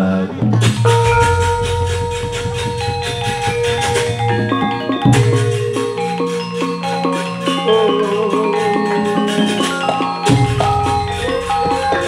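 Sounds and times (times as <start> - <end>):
fast even struck beat: 0.5 - 6.7
deep low gong note: 0.6 - 6.6
long ringing metal notes: 0.6 - 8.9, 9.8 - 12.0.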